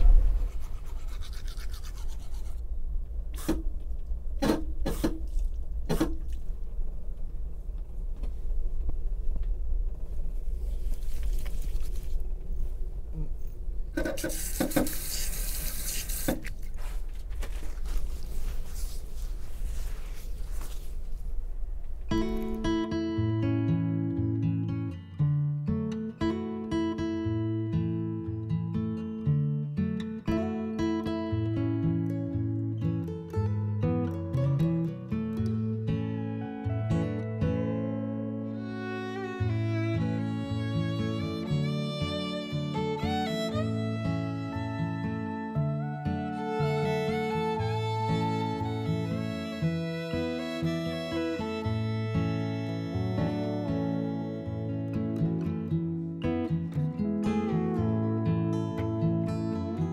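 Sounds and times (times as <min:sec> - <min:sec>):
toothbrush scrubbing: 0:00.5 - 0:02.6, 0:14.0 - 0:17.1
train rumble: 0:02.5 - 0:14.6
tap water running: 0:14.0 - 0:16.7
plucked acoustic guitar music: 0:22.1 - 0:59.9.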